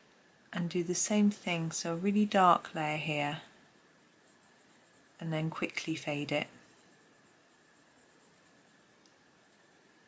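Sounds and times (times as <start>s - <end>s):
pencil scratching on paper: 2.8s - 10.0s.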